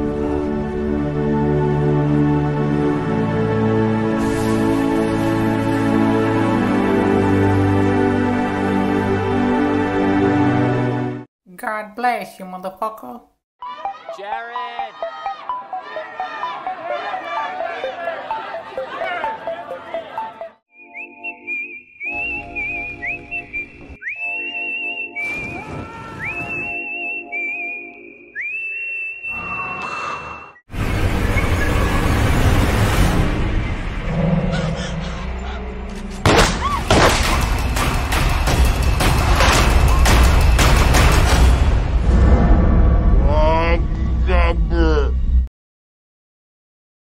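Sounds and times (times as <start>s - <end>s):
whistled melody: 13.6s - 32.0s.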